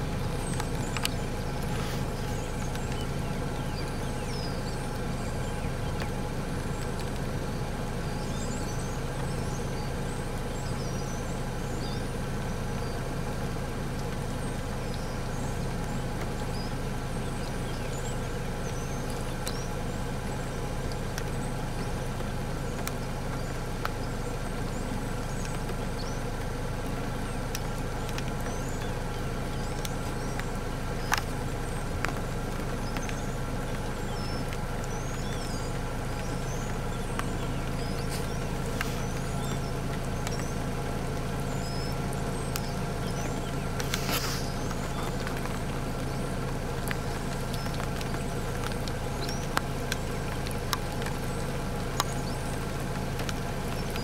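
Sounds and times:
small birds chirping: 0.0 - 54.0
vehicle engine idling: 0.0 - 54.0.

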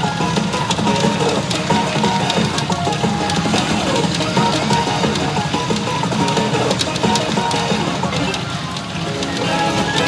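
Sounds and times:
clicks: 0.0 - 10.0
pachinko game music: 0.0 - 10.0.

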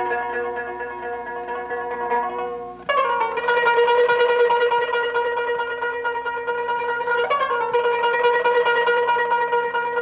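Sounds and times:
plucked zither: 0.0 - 10.0.

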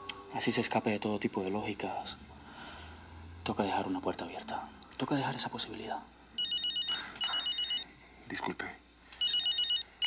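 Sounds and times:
phone ringtone beeps: 6.4 - 8.0, 9.2 - 10.0.

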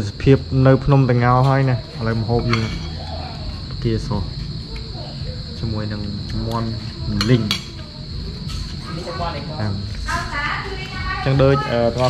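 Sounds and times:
crickets chirring: 0.0 - 12.0.

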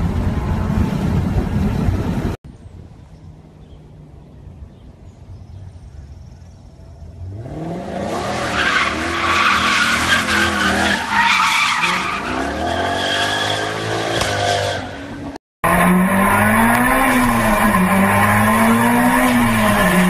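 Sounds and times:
car engine at high revs: 7.1 - 10.9, 12.1 - 20.0
car engine revving: 15.6 - 20.0.

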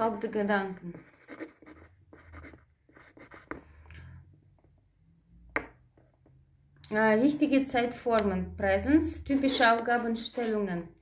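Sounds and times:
pen scratching on paper: 0.9 - 3.6.

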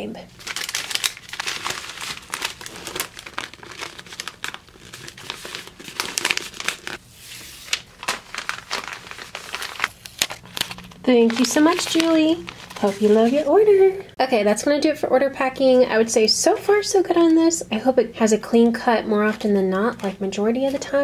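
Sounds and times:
paper packaging rustling: 0.3 - 14.0.

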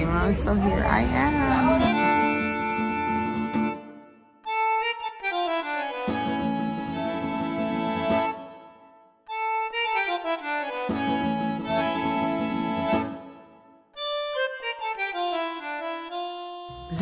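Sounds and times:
reedy instrumental chords: 0.0 - 17.0.

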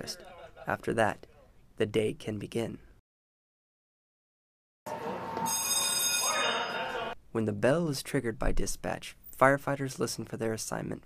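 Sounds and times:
alert bell ringing: 5.4 - 7.2.

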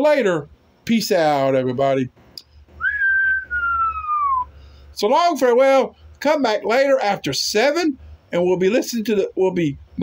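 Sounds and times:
man whistling a sliding note: 2.8 - 4.5.

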